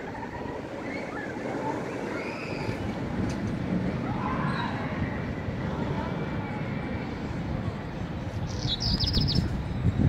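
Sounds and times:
faint distant voices: 0.0 - 9.8.

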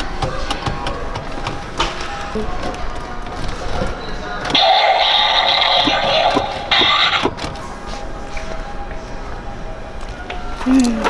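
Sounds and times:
shop background noise: 0.0 - 11.0
electronic toy sound effect: 4.6 - 7.3.

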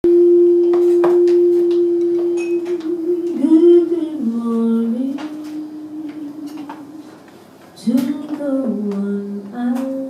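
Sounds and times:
steady pure tone: 0.0 - 10.0.

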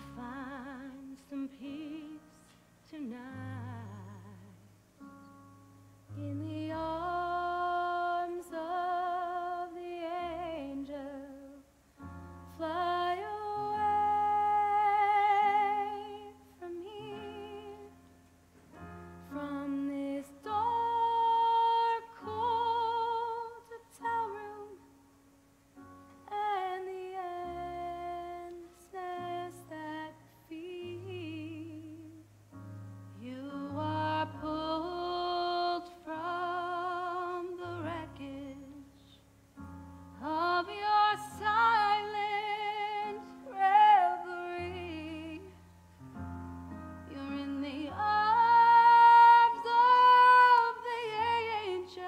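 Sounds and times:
woman singing a slow ballad: 0.0 - 4.7, 6.1 - 18.0, 19.2 - 24.9, 26.2 - 32.3, 33.1 - 39.2, 40.1 - 45.7, 47.0 - 52.0
soft sustained accompaniment: 0.0 - 52.0.

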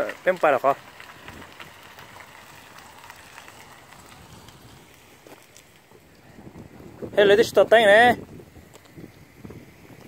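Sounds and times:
light crackle of small ticks: 0.0 - 7.9, 8.6 - 10.0
faint outdoor noise: 0.0 - 10.0.

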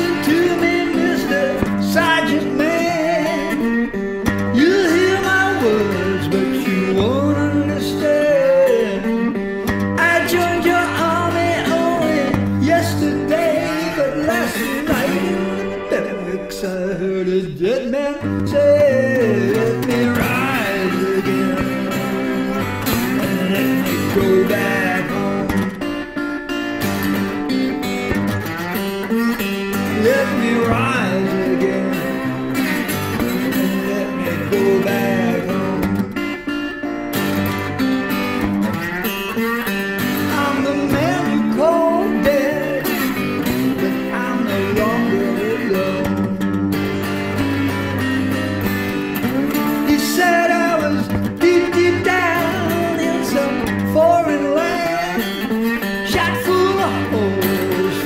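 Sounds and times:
man singing: 0.0 - 26.2, 28.8 - 36.6, 38.3 - 58.0
slow blues electric guitar: 0.0 - 58.0.

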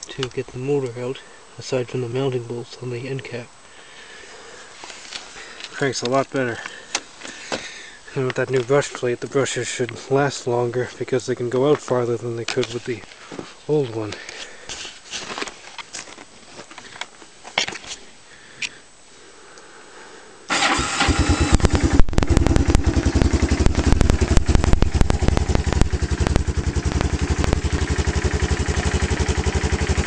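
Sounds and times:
handling clicks and knocks: 11.7 - 13.2
electric starter: 20.5 - 30.0
engine idling: 20.5 - 30.0.

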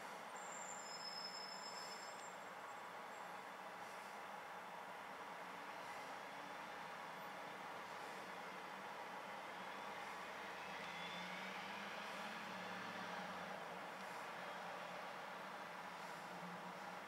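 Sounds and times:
city traffic hiss: 0.0 - 17.0
vehicle engine hum: 2.3 - 17.0.

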